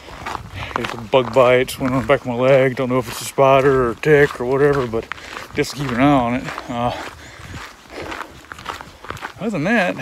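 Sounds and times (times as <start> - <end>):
footsteps walking: 0.0 - 10.0
person speaking: 0.6 - 7.2, 9.2 - 10.0.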